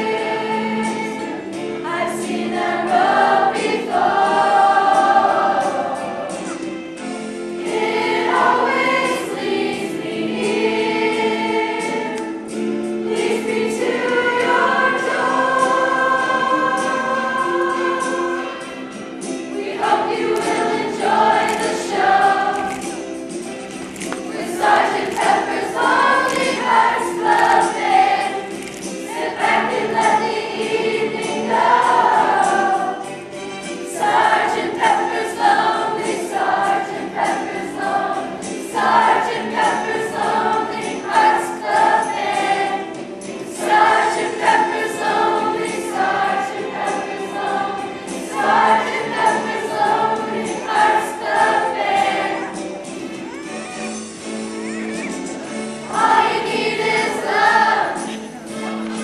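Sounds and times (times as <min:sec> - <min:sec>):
children's choir singing pop song: 0:00.0 - 0:59.0.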